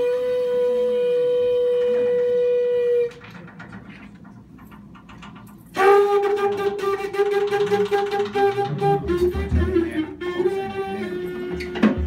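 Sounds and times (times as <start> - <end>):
wind instrument long note: 0.0 - 3.2, 5.8 - 12.0
soft jazz band accompaniment: 5.7 - 12.0.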